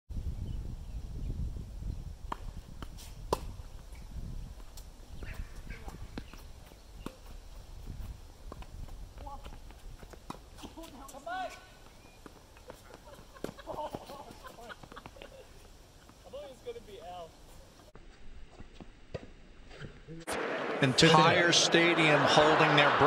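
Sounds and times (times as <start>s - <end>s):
tennis ball struck by rackets: 2.3s - 3.6s
players calling: 20.3s - 23.0s.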